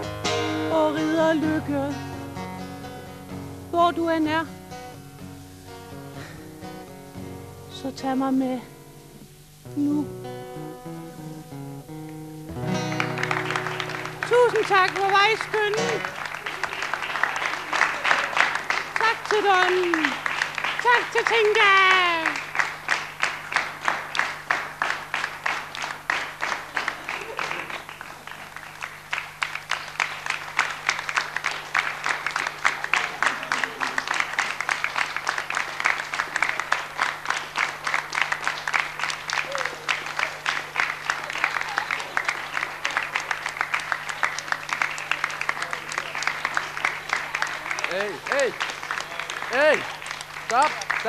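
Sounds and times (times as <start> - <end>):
audience applauding: 12.5 - 51.0.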